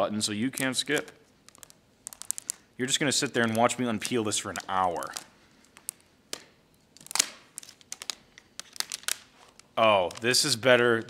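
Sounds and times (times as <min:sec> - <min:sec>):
plastic film clicking and crackling: 0:00.4 - 0:11.0.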